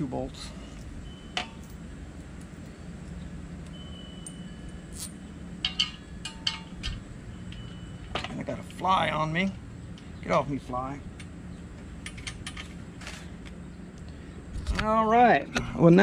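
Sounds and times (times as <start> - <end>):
steady low hum: 0.0 - 16.0
steel bolts clinking: 0.7 - 8.9, 12.0 - 13.3.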